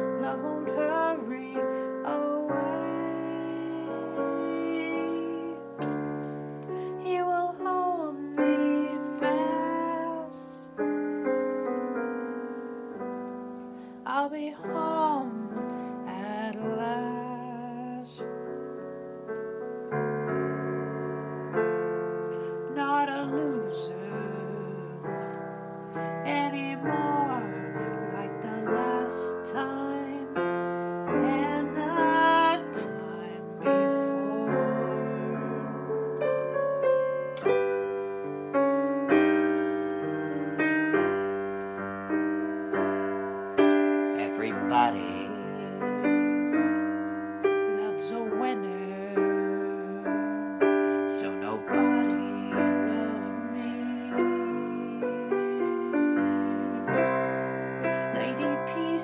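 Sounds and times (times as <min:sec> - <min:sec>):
man singing: 0:00.0 - 0:06.0, 0:22.7 - 0:25.1, 0:26.3 - 0:30.4, 0:31.1 - 0:35.9, 0:44.2 - 0:46.4, 0:47.8 - 0:50.3, 0:51.1 - 0:57.2, 0:58.1 - 0:59.0
piano ballad chords: 0:00.0 - 0:59.0.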